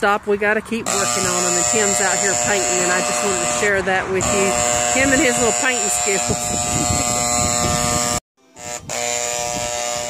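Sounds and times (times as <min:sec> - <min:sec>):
steady mechanical buzz: 0:00.8 - 0:10.0.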